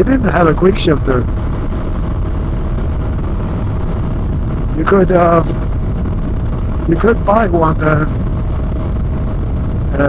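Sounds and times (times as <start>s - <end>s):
wind rushing on microphone: 0.0s - 10.0s.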